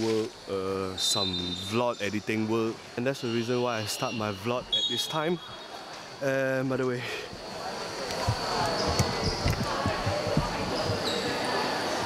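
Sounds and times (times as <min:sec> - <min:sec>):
people's voices: 0:03.1 - 0:12.0
shoe squeaks: 0:08.1 - 0:11.6
basketballs bouncing on court: 0:08.2 - 0:11.3.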